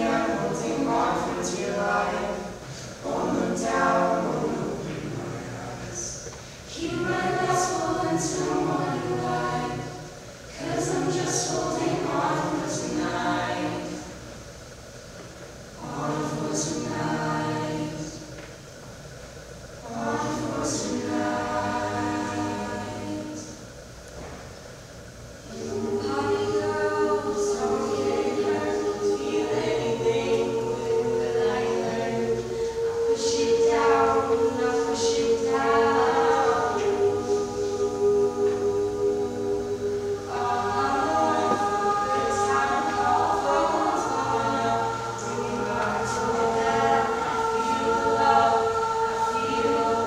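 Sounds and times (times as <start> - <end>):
children's choir singing unaccompanied: 0.0 - 50.0.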